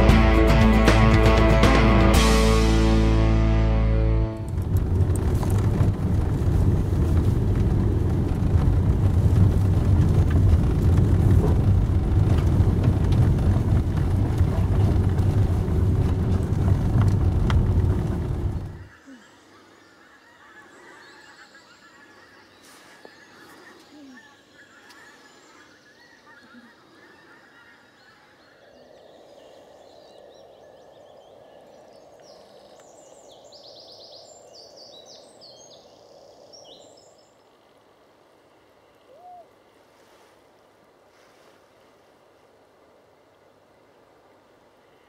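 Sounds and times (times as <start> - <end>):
vehicle engine and road noise: 0.0 - 18.9
woodland ambience: 0.0 - 45.0
distant bird calls: 13.9 - 45.0.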